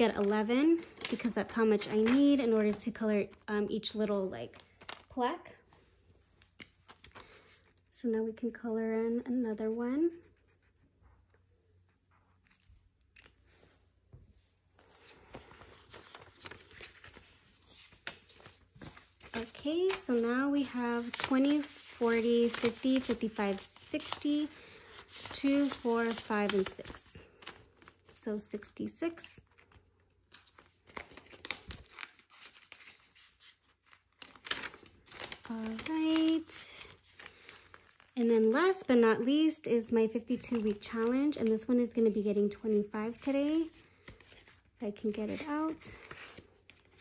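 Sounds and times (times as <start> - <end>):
plastic envelope crinkling: 0.0 - 5.1, 14.8 - 28.2, 29.0 - 38.8
rustle of paper bills: 14.7 - 38.8, 42.7 - 47.0.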